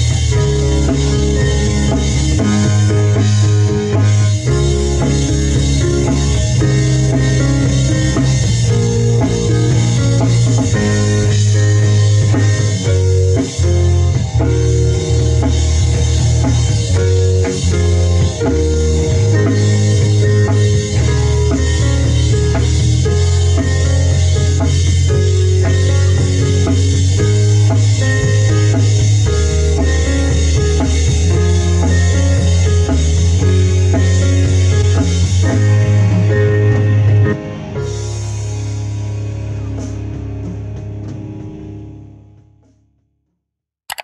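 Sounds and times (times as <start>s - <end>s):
rock band playing live: 0.0s - 42.4s
strong steady bass line: 0.0s - 42.4s.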